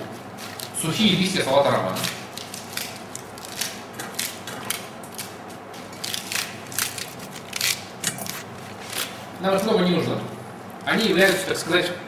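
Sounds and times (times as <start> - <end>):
lettuce leaves tearing: 1.7 - 9.7.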